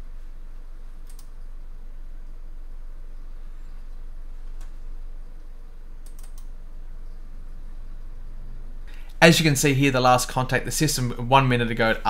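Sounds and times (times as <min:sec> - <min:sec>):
steady low hum: 0:00.0 - 0:12.0
sharp computer clicks: 0:01.0 - 0:01.4, 0:06.0 - 0:06.5.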